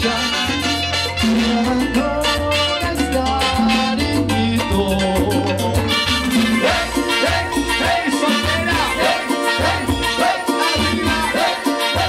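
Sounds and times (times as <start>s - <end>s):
trumpets: 0.0s - 4.3s, 5.9s - 12.0s
bass line: 0.0s - 12.0s
live band playing latin dance music: 0.0s - 12.0s
percussion beat: 0.0s - 12.0s.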